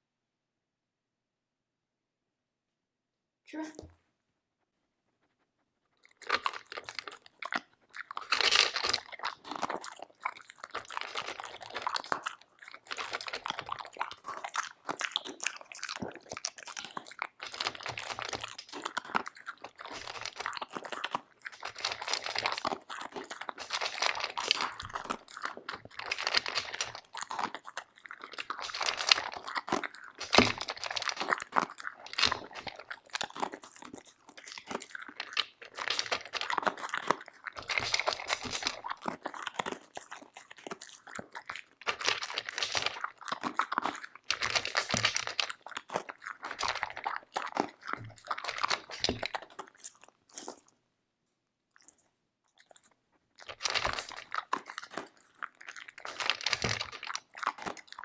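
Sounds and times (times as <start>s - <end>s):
dog crunching and chewing kibble: 5.1s - 50.9s, 51.7s - 58.0s.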